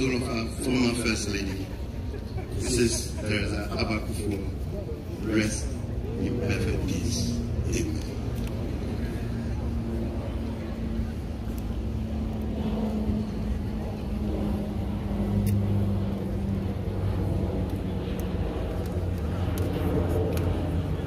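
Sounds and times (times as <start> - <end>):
continuous low hum: 0.0 - 21.0.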